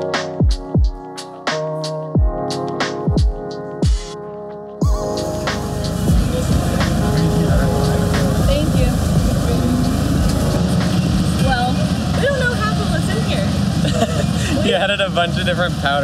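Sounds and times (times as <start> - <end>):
crowd chatter: 4.8 - 16.0
low rumble: 5.0 - 15.8.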